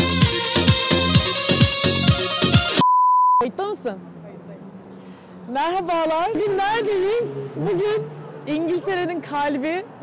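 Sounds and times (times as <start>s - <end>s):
electronic music with kick beat: 0.0s - 2.8s
electronic beep: 2.8s - 3.4s
woman speaking: 3.4s - 4.7s, 5.5s - 9.9s
outdoor background noise: 3.4s - 10.0s.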